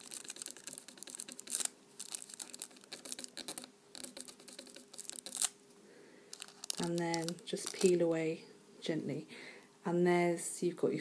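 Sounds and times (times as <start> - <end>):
foil crinkling and scratching: 0.0 - 5.5, 6.4 - 8.0.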